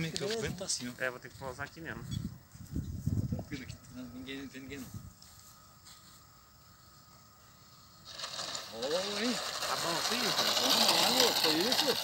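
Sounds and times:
electric motor and propeller whirring: 0:05.0 - 0:12.0.

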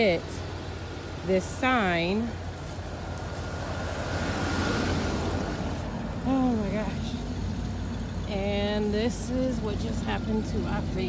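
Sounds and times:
van engine idling: 0:00.0 - 0:11.0.

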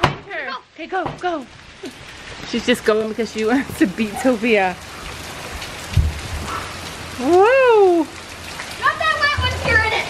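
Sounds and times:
rain on wet pavement: 0:00.0 - 0:10.0
low thump: 0:05.9 - 0:06.5.

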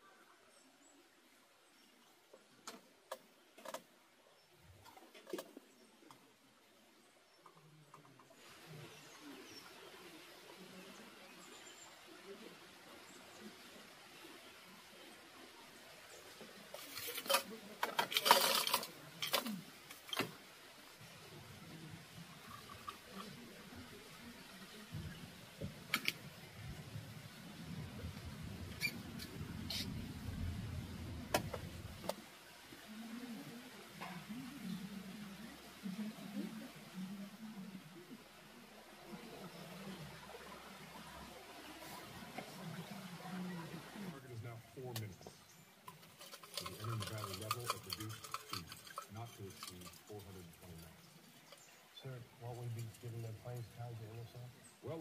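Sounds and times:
faint muffled speech: 0:07.4 - 0:27.0, 0:32.7 - 0:45.6, 0:46.2 - 0:55.0.

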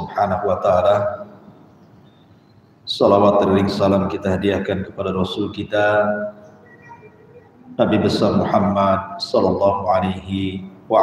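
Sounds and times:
man speaking: 0:00.0 - 0:01.3, 0:02.9 - 0:06.4, 0:07.8 - 0:11.0
faint steady high tone: 0:06.1 - 0:08.7.

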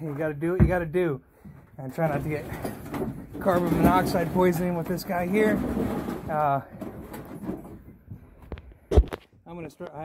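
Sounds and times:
faint rustling: 0:01.3 - 0:09.9.

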